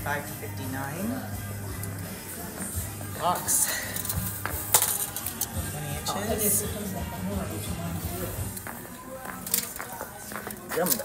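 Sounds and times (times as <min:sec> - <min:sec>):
metal tape measure clicking and rattling: 0:03.9 - 0:05.6.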